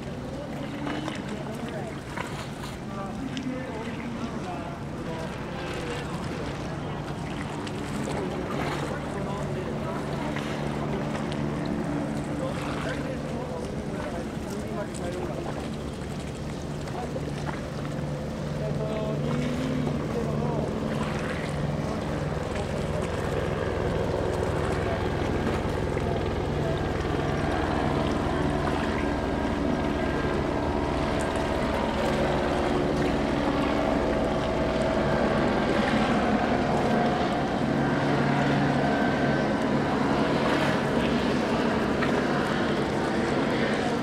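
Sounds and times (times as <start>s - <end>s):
outboard motors humming: 0.0s - 44.0s
water noise: 0.0s - 44.0s
wind: 0.0s - 44.0s.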